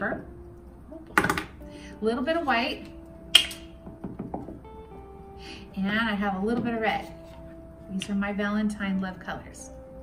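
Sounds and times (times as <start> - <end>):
soft background music: 0.0 - 10.0
plastic bottle cap snap: 3.3 - 3.7.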